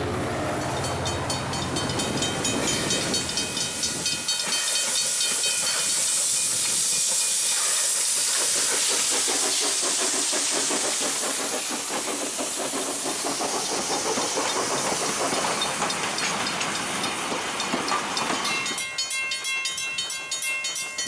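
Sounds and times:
carriages clattering on track: 0.0 - 21.0
steam locomotive hissing: 0.0 - 21.0.

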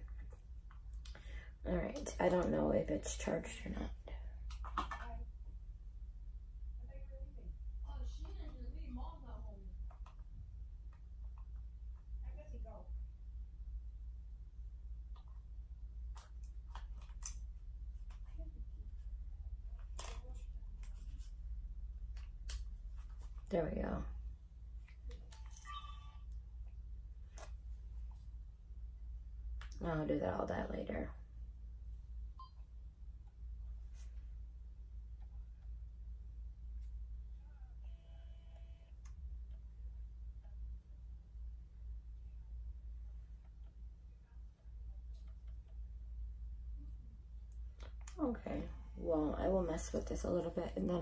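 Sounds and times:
camera whirring: 37.8 - 39.6.

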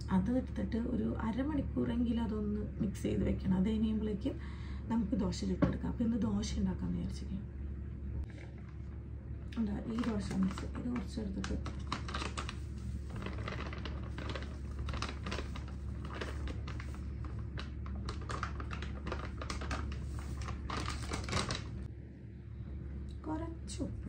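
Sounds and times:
plastic packet crinkling: 9.6 - 21.9.

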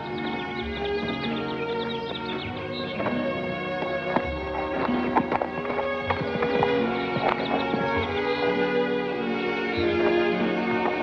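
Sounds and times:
film score music: 0.0 - 11.0
horse hooves on dirt: 0.0 - 11.0.

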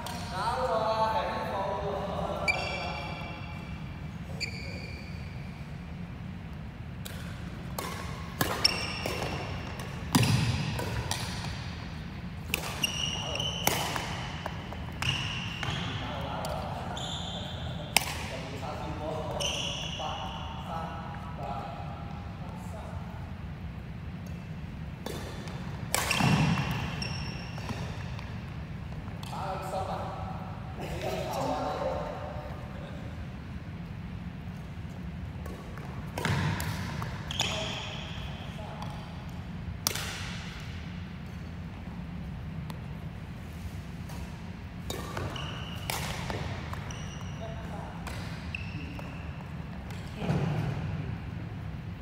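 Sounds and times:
steady low hum: 0.0 - 19.4, 20.1 - 52.0
shoes squeaking on wooden court: 2.2 - 5.6, 7.9 - 11.2, 12.6 - 17.9, 18.8 - 20.5, 25.1 - 29.4, 34.6 - 39.0, 44.0 - 50.8
rackets hitting shuttlecock: 7.0 - 16.6, 17.9 - 18.4, 25.0 - 29.4, 35.4 - 41.3, 44.0 - 46.9, 47.9 - 51.0.

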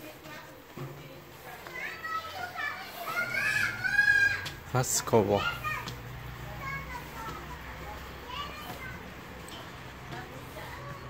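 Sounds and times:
children calling and talking: 0.0 - 11.0.

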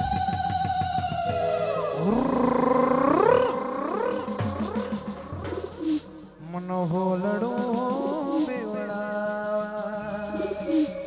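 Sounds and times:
drums: 0.0 - 11.0
gliding lead melody: 1.3 - 6.2.

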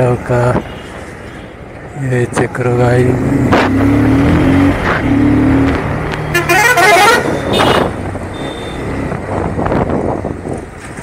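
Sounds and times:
vehicle engines running: 0.0 - 11.0
car horn: 6.2 - 8.9
loud horn blaring: 6.2 - 8.9.

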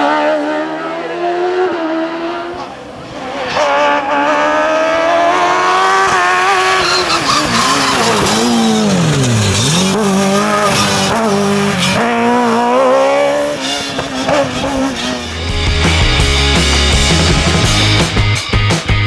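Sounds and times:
race car engine at high revs: 0.0 - 18.2
rock music: 15.0 - 19.0.

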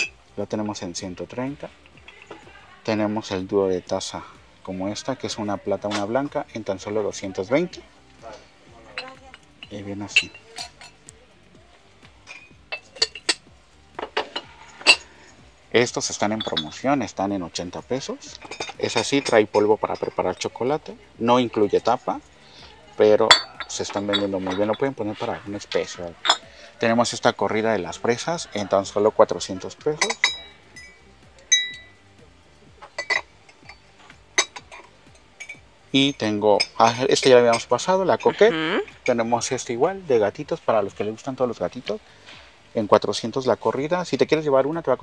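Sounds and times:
metal mug and lid clinking: 8.2 - 11.1, 12.2 - 20.8, 23.0 - 32.0, 32.8 - 39.8.

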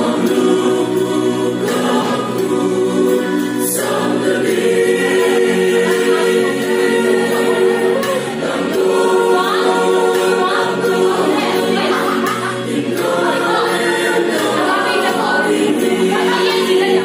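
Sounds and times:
mixed choir singing in harmony: 0.0 - 17.0.

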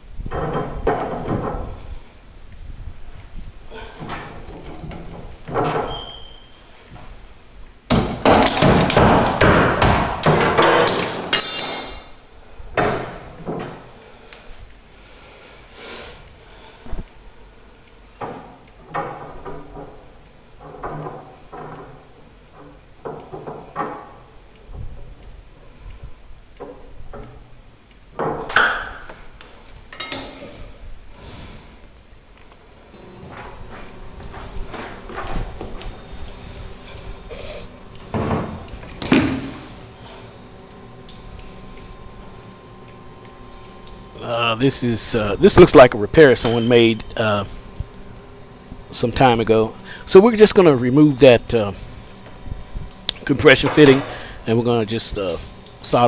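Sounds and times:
hammer striking cement: 7.9 - 11.0
debris clinking: 8.0 - 12.2.

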